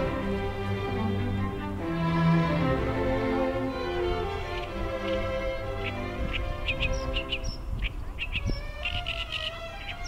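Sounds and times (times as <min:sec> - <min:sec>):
background music: 0:00.0 - 0:07.8, 0:08.4 - 0:10.0
warbler singing: 0:03.8 - 0:10.0.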